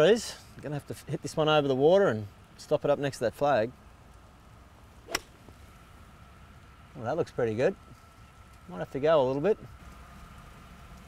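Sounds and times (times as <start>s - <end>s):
golf club striking ball: 5.0s - 5.6s.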